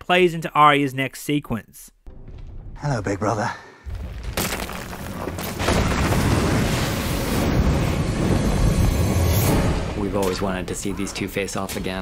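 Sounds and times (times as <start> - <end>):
roar of wind and fire: 5.6 - 10.0.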